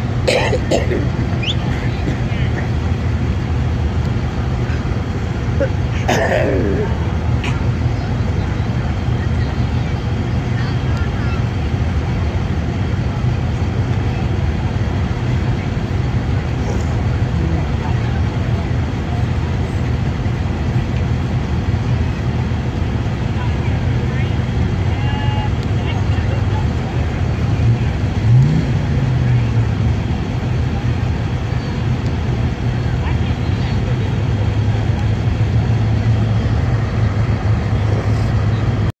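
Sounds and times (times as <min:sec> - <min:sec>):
spectators' voices: 0:00.0 - 0:38.9
vehicle engines rumbling: 0:00.0 - 0:39.0.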